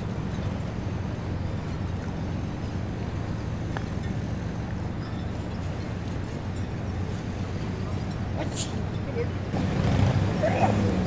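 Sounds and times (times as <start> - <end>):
engine traffic rumble: 0.0 - 11.0.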